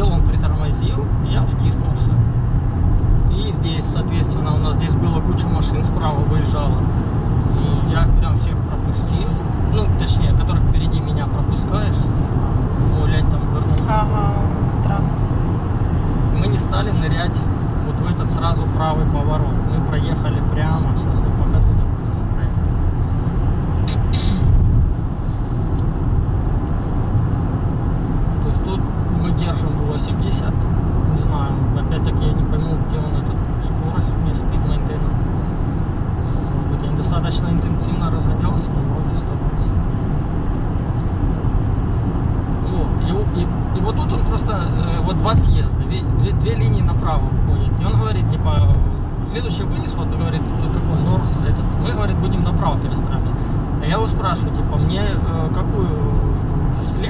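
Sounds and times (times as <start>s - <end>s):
road and engine rumble: 0.0s - 57.0s.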